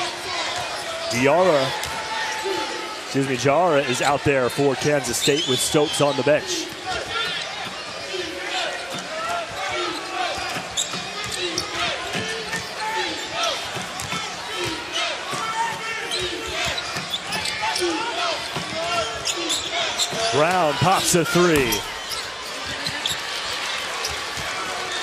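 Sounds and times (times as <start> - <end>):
crowd noise: 0.0 - 25.0
sneakers squeaking on floor: 8.6 - 25.0.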